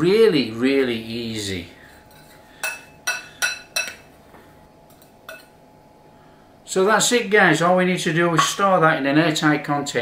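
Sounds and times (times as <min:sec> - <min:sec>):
metal spoon clinking on glass bowl: 0:02.0 - 0:04.1, 0:04.9 - 0:05.6.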